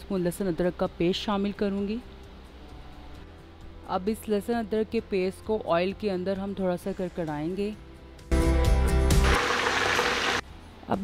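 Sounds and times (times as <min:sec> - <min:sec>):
paste sizzling in hot oil: 0:09.2 - 0:10.4.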